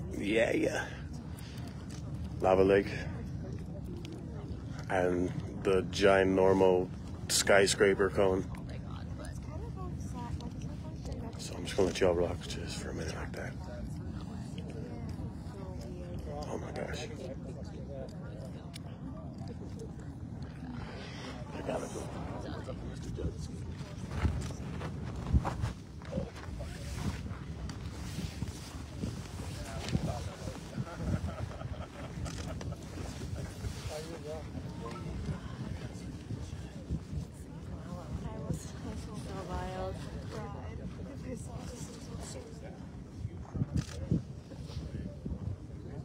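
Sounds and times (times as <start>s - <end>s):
faint voices murmuring: 0.0s - 46.0s
faint crackles: 18.0s - 42.6s
wind buffeting microphone: 18.3s - 46.0s
lava fountain roaring: 18.9s - 39.4s.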